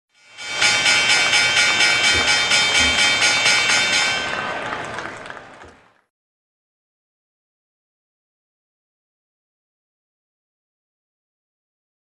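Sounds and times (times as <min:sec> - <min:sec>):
pulsing whoosh with ringing tones: 0:00.2 - 0:04.6.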